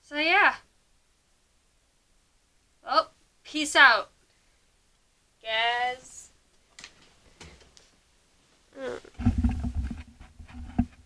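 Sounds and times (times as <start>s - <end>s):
handling rumble on microphone: 8.8s - 11.0s.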